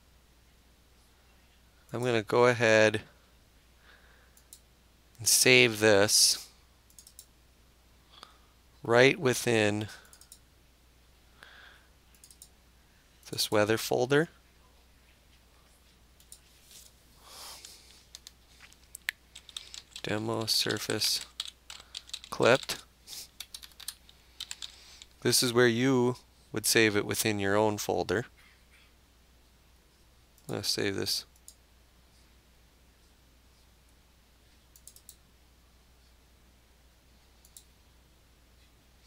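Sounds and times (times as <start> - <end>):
low steady hum: 0.0 - 39.0
faint computer mouse clicks: 6.9 - 7.3, 12.1 - 12.5, 34.7 - 35.2, 37.4 - 37.7.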